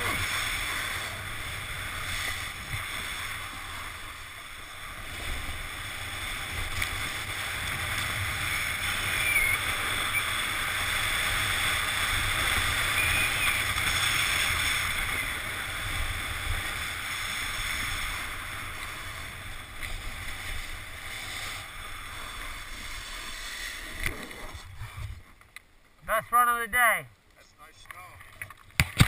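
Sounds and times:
snowboard sliding on snow: 0.0s - 25.2s.

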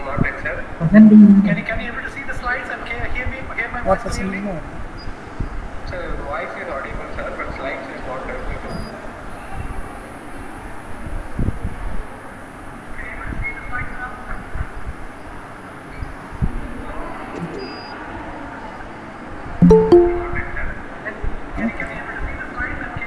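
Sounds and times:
video call join chime: 19.6s - 20.6s.

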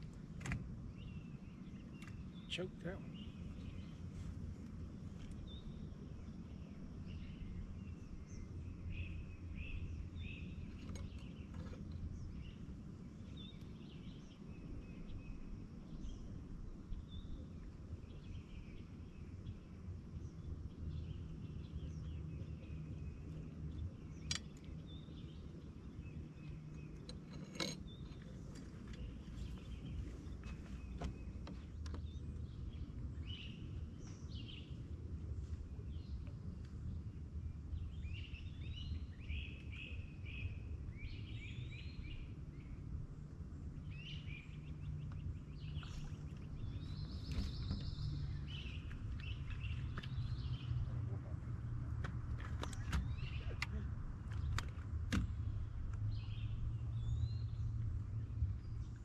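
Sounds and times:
low outdoor rumble: 0.0s - 59.0s
songbirds chirping: 0.0s - 59.0s.

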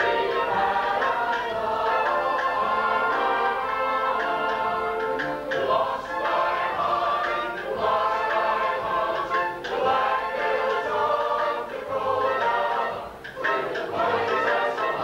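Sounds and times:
cast singing in chorus: 0.0s - 15.0s.

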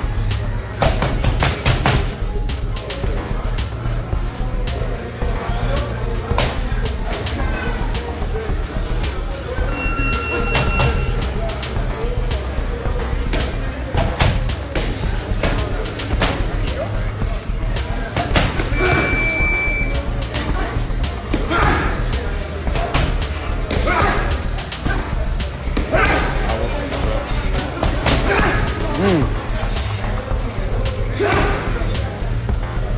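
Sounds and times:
background music with low beat: 0.0s - 32.9s.

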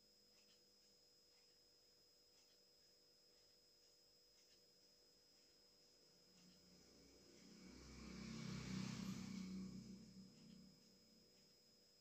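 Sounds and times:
vehicle passing by: 6.4s - 11.4s.

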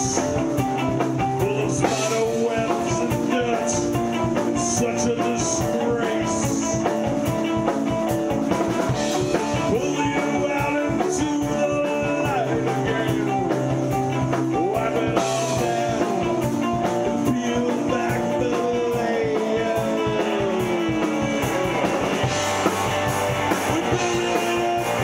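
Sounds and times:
live rock band playing: 0.0s - 25.0s.

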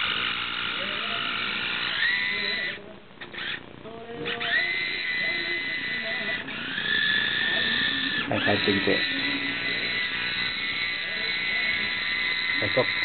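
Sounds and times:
toy car electric motor whining: 0.0s - 3.6s, 4.2s - 13.0s.

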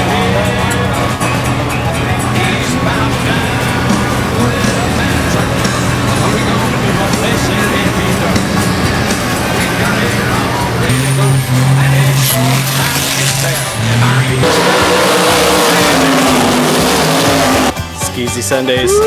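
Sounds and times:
truck engine revving hard: 0.0s - 17.9s.

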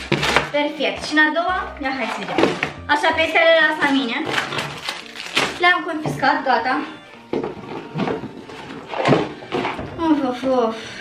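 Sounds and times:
light background music: 0.0s - 11.0s.

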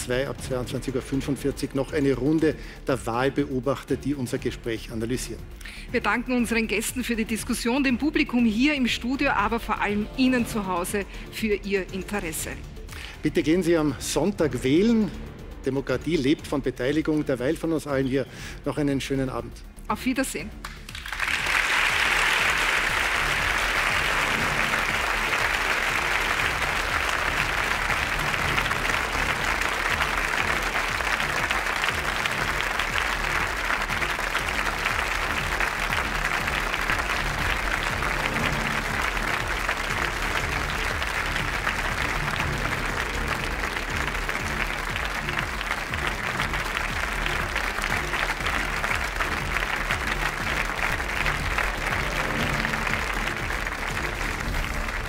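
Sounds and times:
music playing: 0.0s - 55.0s
studio audience applauding: 20.6s - 55.0s.

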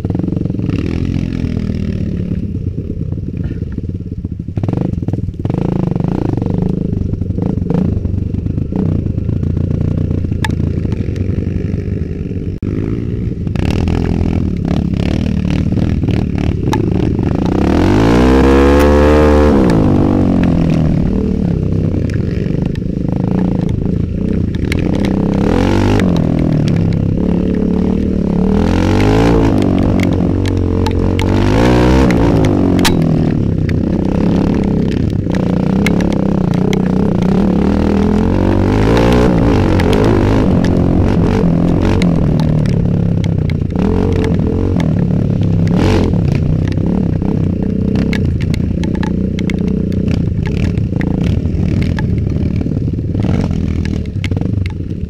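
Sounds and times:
motorbike engine revving: 0.0s - 55.0s
bike clattering over ruts: 13.5s - 55.0s.

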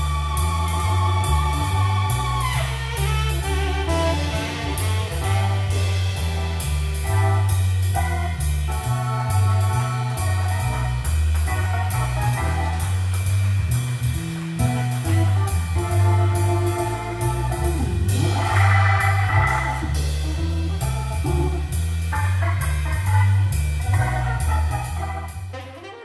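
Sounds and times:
drum kit cymbals: 0.0s - 25.6s
walking bass line: 0.0s - 25.6s
electric keyboard chords: 0.0s - 26.0s.

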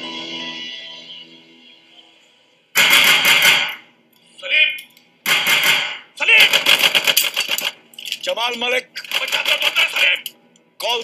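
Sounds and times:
rapid gunfire: 2.8s - 3.8s, 5.2s - 7.8s, 9.1s - 10.1s.

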